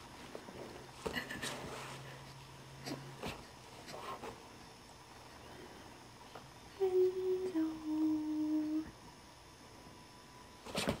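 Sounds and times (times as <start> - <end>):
person humming: 6.7 - 9.0.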